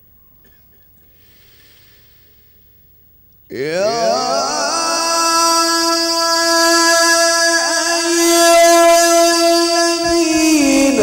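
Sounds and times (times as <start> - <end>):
person reciting on a long high note: 3.5 - 11.0.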